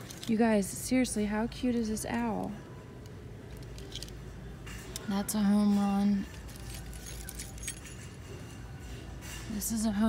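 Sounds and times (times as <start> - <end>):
ornaments rustling and clinking: 0.0 - 0.5, 3.0 - 9.7
low background hum: 0.0 - 10.0.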